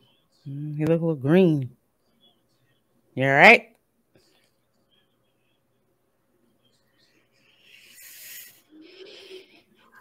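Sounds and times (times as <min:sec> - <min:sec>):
heavy breathing: 0:07.2 - 0:10.0.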